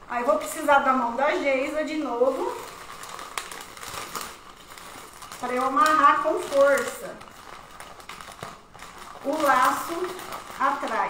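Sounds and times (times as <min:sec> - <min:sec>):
wrapping paper rustling and crinkling: 0:00.0 - 0:11.0.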